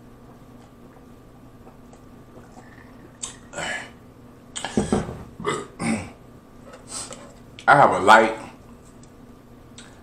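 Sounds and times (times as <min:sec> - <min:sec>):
man burping: 0:04.6 - 0:06.2.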